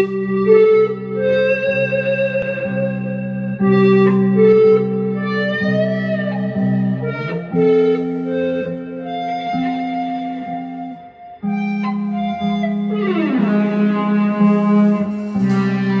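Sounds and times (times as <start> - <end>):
electric guitar lead melody: 0.0 - 16.0
held electric bass notes: 0.0 - 16.0.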